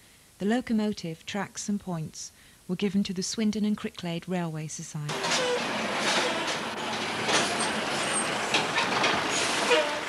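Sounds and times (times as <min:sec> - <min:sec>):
clanks of wheels and wagons: 0:05.1 - 0:10.0
train rumbling along track: 0:05.1 - 0:10.0.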